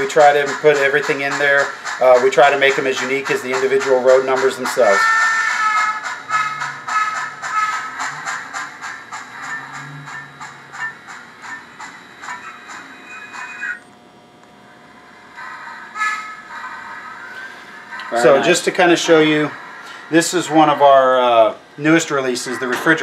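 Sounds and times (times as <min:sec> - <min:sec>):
model steam locomotive chuffs: 0:00.0 - 0:13.8, 0:18.5 - 0:23.0.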